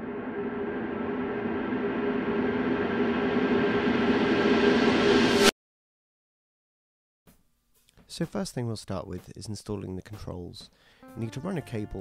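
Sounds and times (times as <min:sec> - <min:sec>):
gong-like drone: 0:00.0 - 0:05.5.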